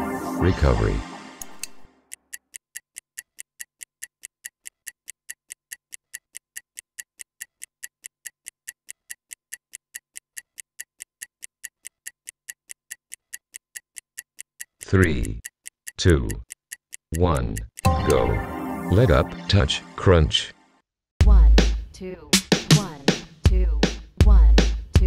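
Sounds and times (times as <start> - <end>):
stopwatch ticking: 1.4 - 18.3.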